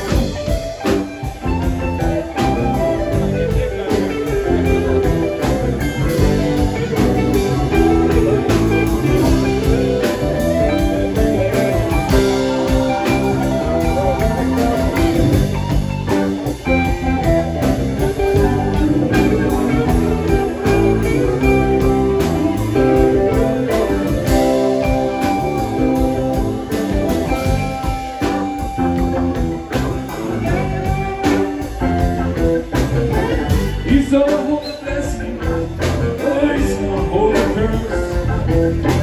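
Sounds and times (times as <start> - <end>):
drum kit: 0.0 - 39.0
electric guitar lines: 0.0 - 39.0.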